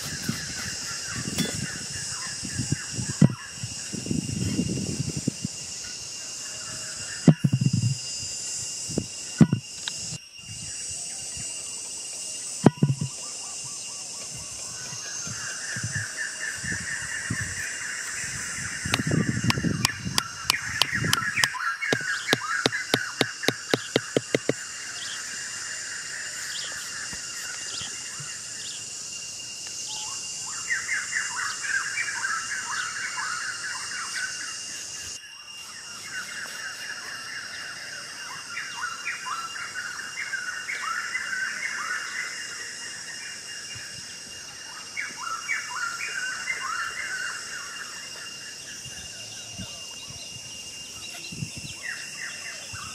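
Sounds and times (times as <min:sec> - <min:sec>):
high insect drone: 0:00.0 - 0:52.9
birds chirping: 0:13.0 - 0:28.9.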